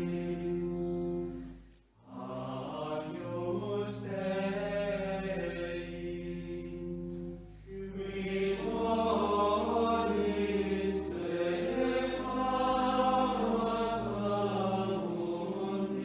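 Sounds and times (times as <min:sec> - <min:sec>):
choir singing slow chant: 0:00.0 - 0:16.0
long held low notes: 0:03.1 - 0:16.0.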